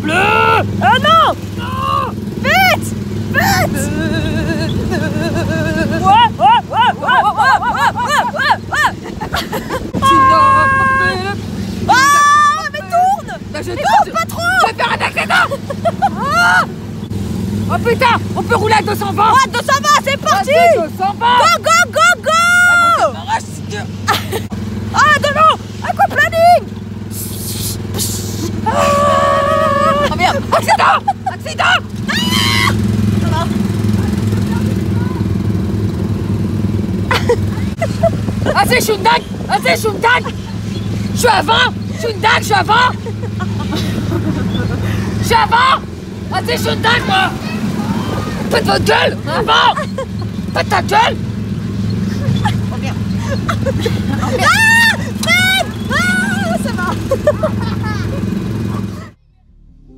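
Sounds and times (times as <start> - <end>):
person shouting: 0.0 - 2.8, 3.4 - 8.5, 10.0 - 15.6, 28.5 - 33.5, 45.3 - 45.9, 46.8 - 49.8
ride car engine hum: 0.0 - 59.9
woman crying out: 3.4 - 9.0, 10.0 - 16.7, 28.0 - 32.8, 53.2 - 57.1.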